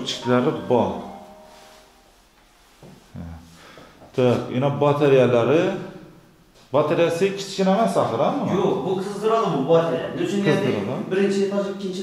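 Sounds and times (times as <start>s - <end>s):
man speaking: 0.0s - 1.3s, 3.2s - 3.5s, 4.1s - 12.0s.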